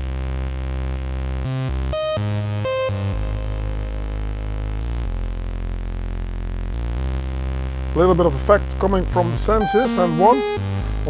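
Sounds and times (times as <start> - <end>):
synth bass line: 0.0 - 11.0.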